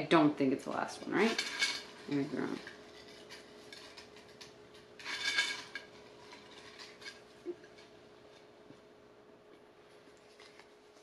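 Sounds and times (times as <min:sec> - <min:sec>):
low steady hum: 0:00.0 - 0:11.0
rustling of small objects: 0:00.9 - 0:08.4.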